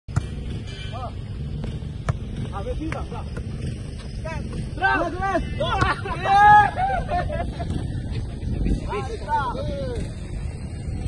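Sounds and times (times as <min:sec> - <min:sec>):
steady low rumble: 0:00.1 - 0:11.0.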